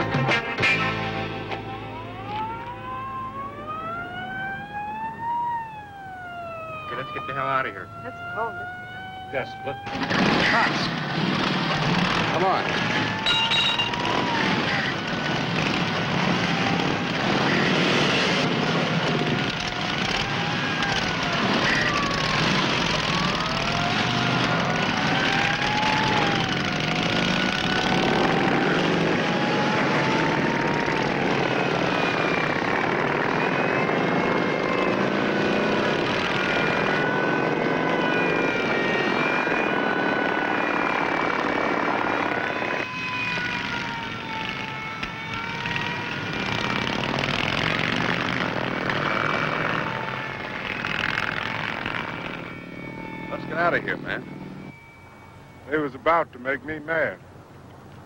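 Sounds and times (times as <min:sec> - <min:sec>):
motorcycle engines revving: 0:06.7 - 0:54.8.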